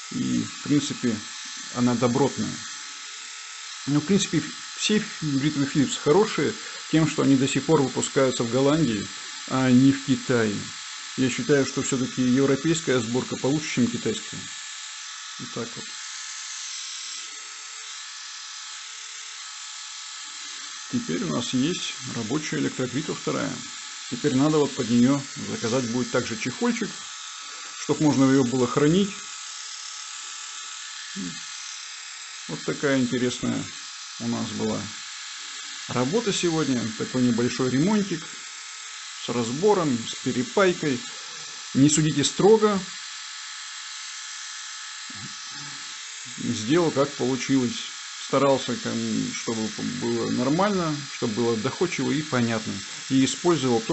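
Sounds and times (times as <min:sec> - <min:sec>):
electric shaver motor humming: 0:00.0 - 0:53.9.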